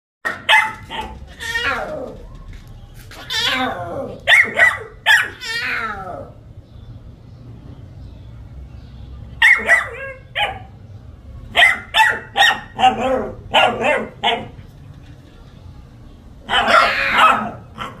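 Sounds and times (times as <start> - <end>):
puppy barking: 0.2 - 2.0, 3.3 - 6.0, 9.4 - 10.8, 11.5 - 14.6, 16.4 - 18.0.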